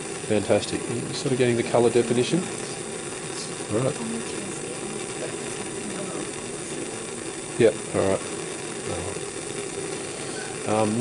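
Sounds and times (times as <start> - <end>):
gas flame rushing: 0.0 - 11.0.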